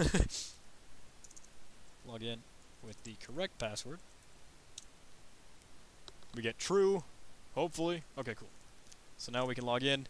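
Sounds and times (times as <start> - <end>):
short breathy laugh: 0.0 - 0.6.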